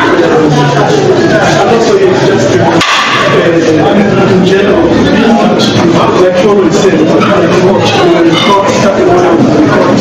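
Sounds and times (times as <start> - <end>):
group of people talking: 0.0 - 10.0.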